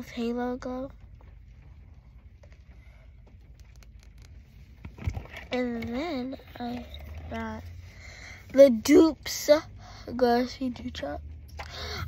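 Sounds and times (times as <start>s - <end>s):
car interior rumble: 0.0s - 12.0s
makeup items clicking and rustling: 3.3s - 5.9s.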